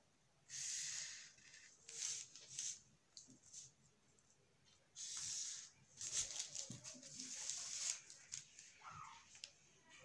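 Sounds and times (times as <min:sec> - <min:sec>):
marker scraping along ruler: 0:00.5 - 0:02.8, 0:05.0 - 0:06.3
paper and ruler handling: 0:05.0 - 0:09.2.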